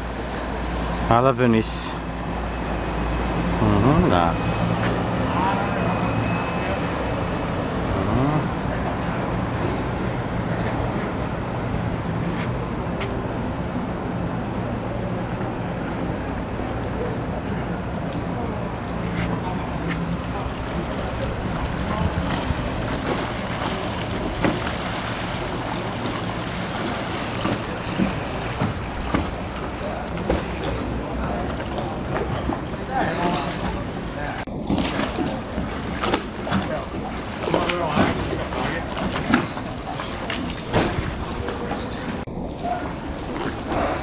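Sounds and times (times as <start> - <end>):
motorboat engine humming: 0.0 - 44.0
outdoor background noise: 0.0 - 44.0
wind buffeting microphone: 20.3 - 30.1
wind on microphone: 21.3 - 24.6.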